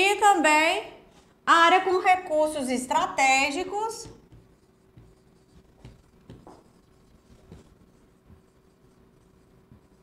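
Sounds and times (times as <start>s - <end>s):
marker strokes on whiteboard: 3.5s - 10.0s
marker tapping: 3.8s - 10.0s.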